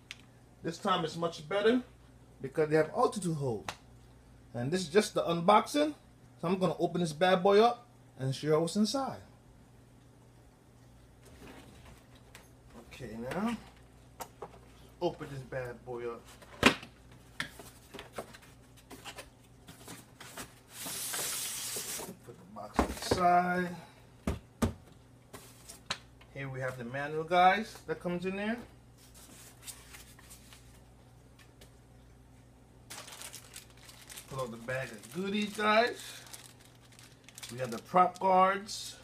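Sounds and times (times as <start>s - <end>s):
plastic bag crinkling: 32.9s - 38.7s.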